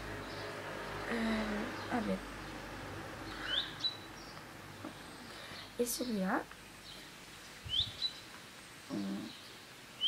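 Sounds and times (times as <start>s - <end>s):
small bird chirping: 1.3s - 2.6s, 3.2s - 10.0s.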